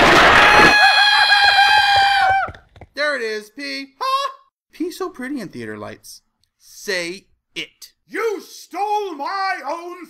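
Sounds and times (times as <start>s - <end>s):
cartoon character high-pitched scream: 0.1s - 2.5s.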